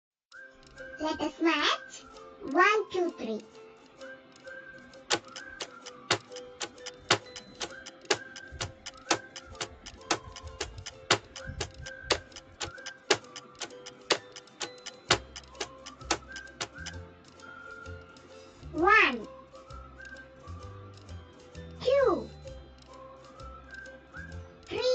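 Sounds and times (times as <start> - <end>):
soft background music: 0.3 - 24.9
timer ticking: 0.3 - 24.9.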